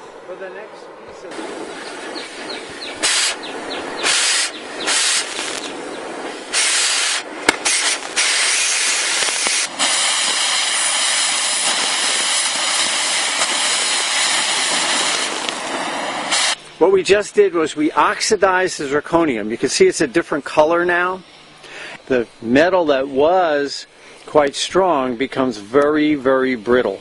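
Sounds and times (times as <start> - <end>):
cutting torch hissing: 1.3 - 27.0
torch click: 4.1 - 5.8, 6.6 - 16.8.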